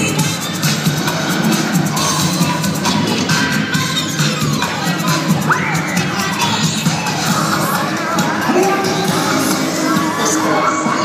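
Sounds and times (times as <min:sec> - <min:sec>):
cheer routine music: 0:00.0 - 0:11.0
children shouting and whooping: 0:05.3 - 0:07.0.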